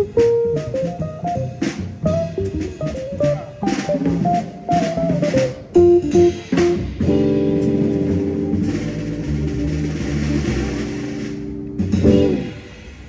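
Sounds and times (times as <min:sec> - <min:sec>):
bass notes: 0:00.0 - 0:13.0
jazz band final chord: 0:00.0 - 0:13.0.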